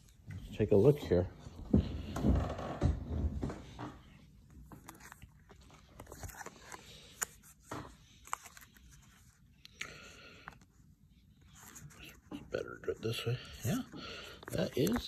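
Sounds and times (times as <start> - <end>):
plastic sleeve pages crinkling: 4.5 - 10.8, 11.4 - 15.0.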